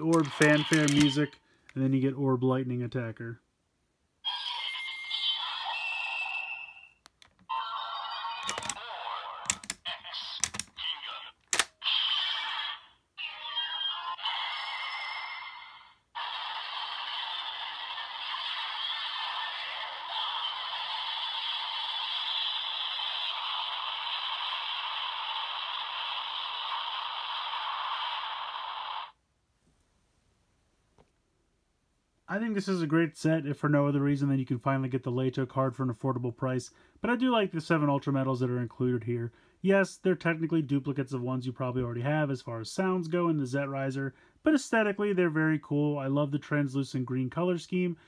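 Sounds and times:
sharp plastic clicks: 0.0s - 1.8s, 8.4s - 8.8s, 9.4s - 10.8s, 11.4s - 11.8s
toy electronic sound effects and music: 0.1s - 1.2s, 4.3s - 29.2s.

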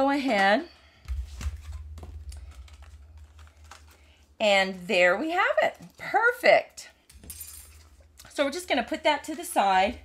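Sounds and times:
paper and plastic rustling: 0.2s - 4.8s.

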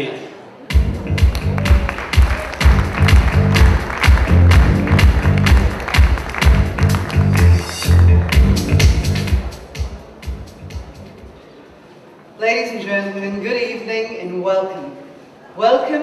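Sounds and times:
loud music over sound system: 0.6s - 11.3s.

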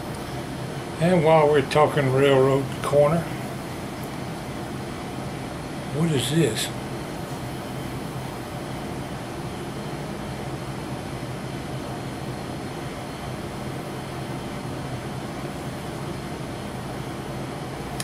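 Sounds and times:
ventilation unit humming: 0.0s - 18.0s.

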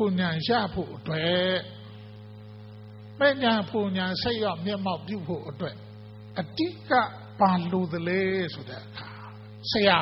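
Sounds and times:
man speaking into a microphone: 0.0s - 2.0s, 3.2s - 10.0s
mains hum: 0.0s - 10.0s.

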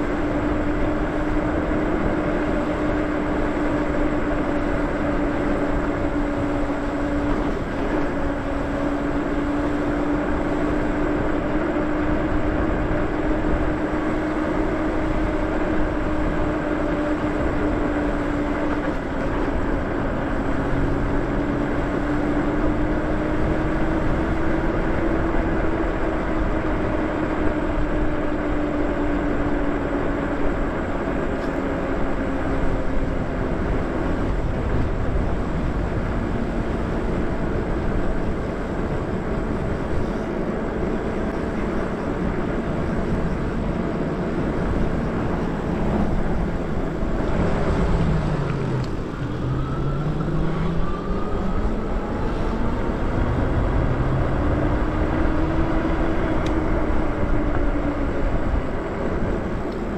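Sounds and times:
wind rush on microphone: 0.0s - 59.9s
electric motor whine: 31.3s - 59.9s.

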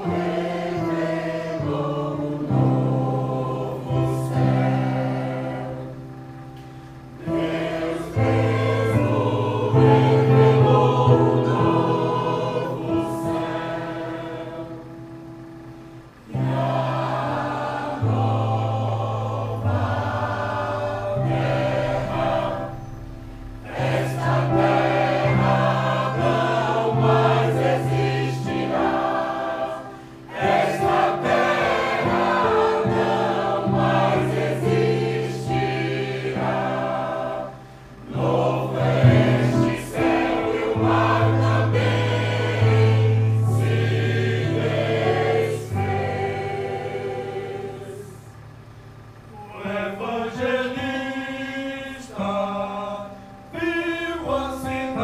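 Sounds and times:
mixed choir singing: 0.0s - 15.3s, 16.2s - 48.6s, 49.3s - 55.0s
electronic keyboard: 0.0s - 51.4s.

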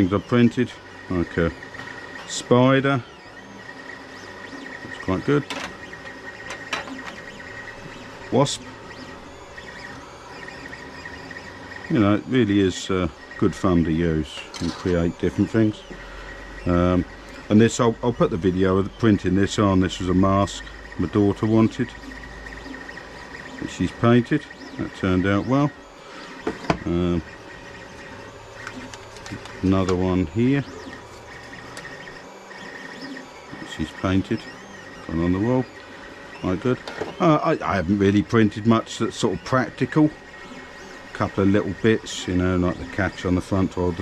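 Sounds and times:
three-d printer whirring: 0.0s - 44.0s.

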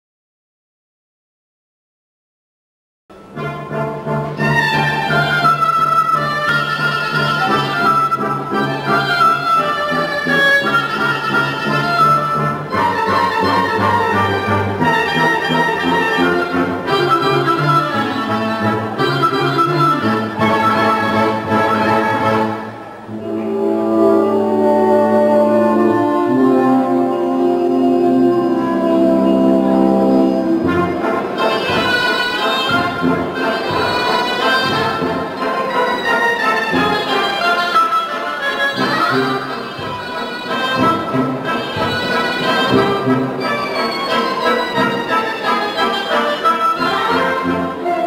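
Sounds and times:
band accompaniment: 3.2s - 48.0s
reed woodwind melody: 3.2s - 48.0s.

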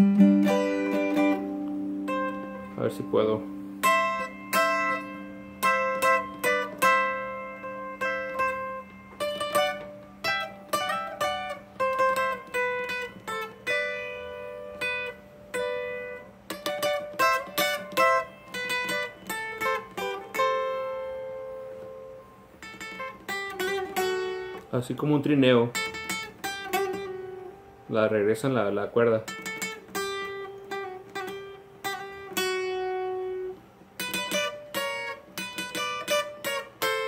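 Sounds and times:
twelve-string acoustic guitar picking: 0.0s - 37.0s.

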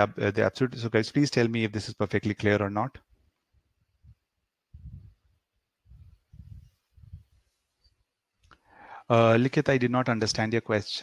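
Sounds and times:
faint muffled low thumps: 3.8s - 7.4s.

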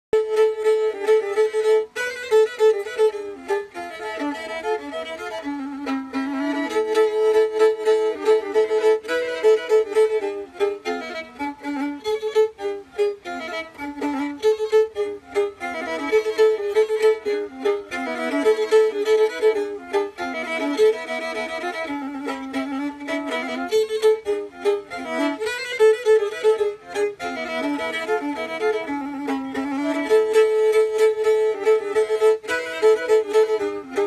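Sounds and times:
bowed fiddle melody: 0.1s - 34.0s.

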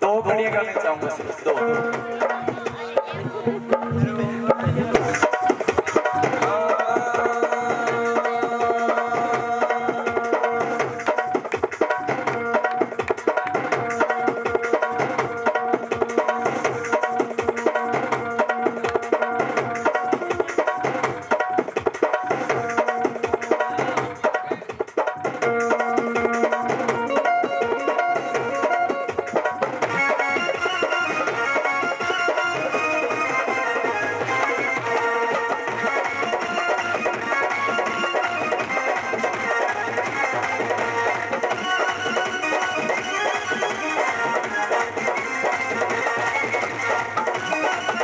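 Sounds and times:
hand drums playing rhythm: 0.0s - 48.0s
keyboard melody: 0.0s - 48.0s.

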